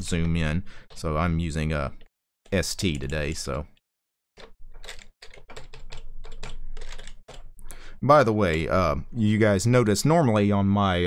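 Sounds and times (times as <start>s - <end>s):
computer keyboard key presses: 4.4s - 7.8s.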